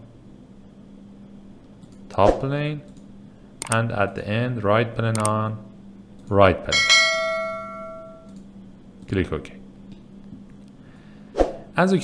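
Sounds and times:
bell ding: 6.7s - 8.3s.

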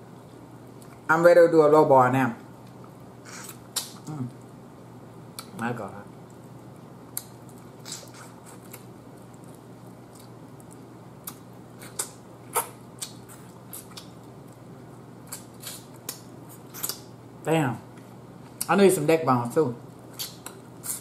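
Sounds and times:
steady low hum: 0.0s - 21.0s
wet mouth smacks and sucking: 3.2s - 4.0s, 7.2s - 8.9s, 11.2s - 14.1s, 15.3s - 17.1s, 20.2s - 21.0s.

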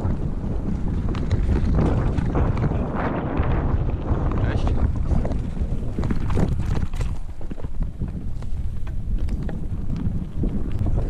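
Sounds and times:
bike clicks and rattles: 0.0s - 11.0s
tyres rumbling on dirt: 0.0s - 11.0s
wind buffeting microphone: 0.0s - 11.0s.

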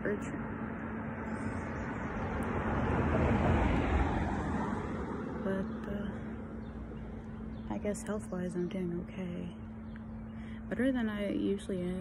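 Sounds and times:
car driving past: 0.3s - 7.8s.

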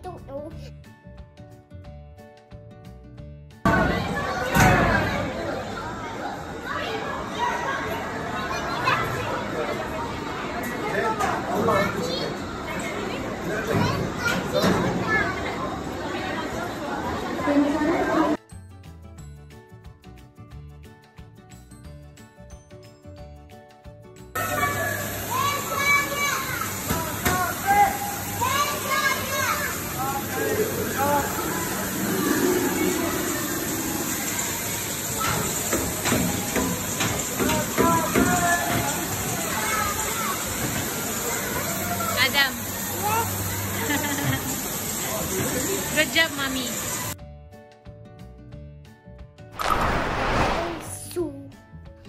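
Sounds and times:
indoor crowd hubbub: 3.6s - 18.4s, 24.3s - 47.2s
children chattering and calling out: 3.7s - 18.4s, 24.4s - 36.0s, 36.8s - 46.0s
water jets hissing: 24.4s - 47.2s, 49.6s - 51.2s.

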